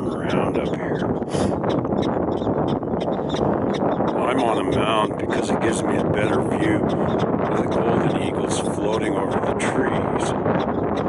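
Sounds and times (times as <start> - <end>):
prairie dog calls: 0.0 - 8.4
wind buffeting microphone: 0.0 - 11.0.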